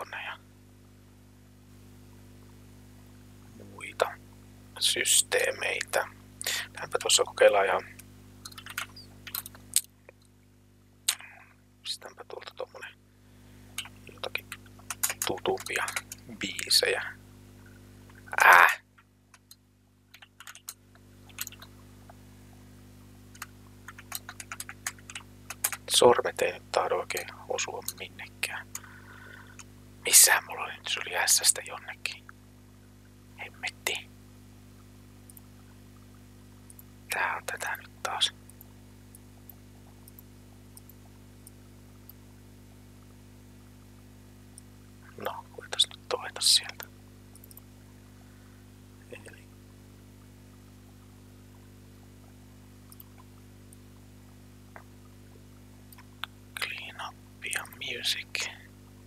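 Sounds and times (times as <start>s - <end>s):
low electrical hum: 0.0s - 59.0s
keyboard keystroke clicks: 8.4s - 9.6s, 13.8s - 16.2s, 19.4s - 21.7s, 23.3s - 25.9s.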